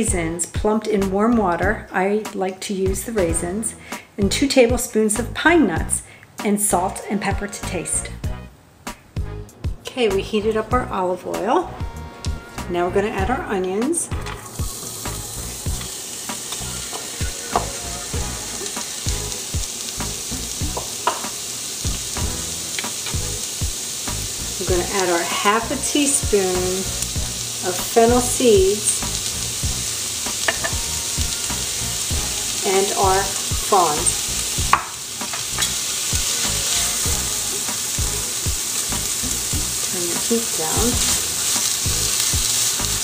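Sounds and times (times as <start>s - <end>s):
onion sizzling in oil: 10.0s - 43.0s
spatula scraping and knocking pan: 30.3s - 30.8s.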